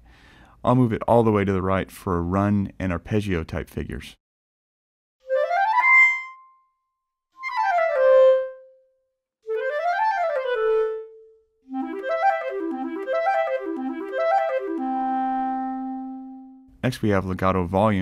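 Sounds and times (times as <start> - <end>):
clarinet playing fast runs: 9.5 - 16.6.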